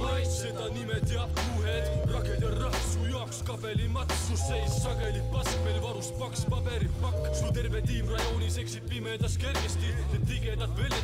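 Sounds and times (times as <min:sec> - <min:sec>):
heavy bass line: 0:00.0 - 0:11.0
man rapping over a beat: 0:00.0 - 0:11.0.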